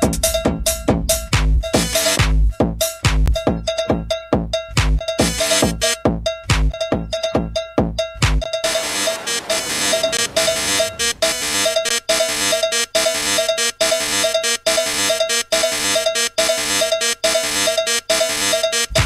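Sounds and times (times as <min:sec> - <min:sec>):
buzzy synth riff pulsing: 0:00.0 - 0:03.7, 0:08.6 - 0:14.2, 0:18.3 - 0:19.0.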